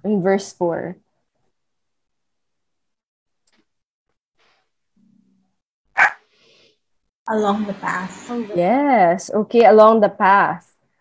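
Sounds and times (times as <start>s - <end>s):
sharp bark-like call: 6.0s - 6.2s.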